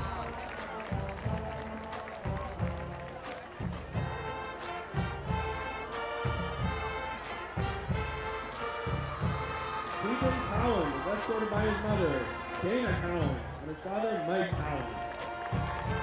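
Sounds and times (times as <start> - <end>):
bass drums beating: 0.0 - 13.6, 14.5 - 16.0
marching band brass chords: 0.0 - 16.0.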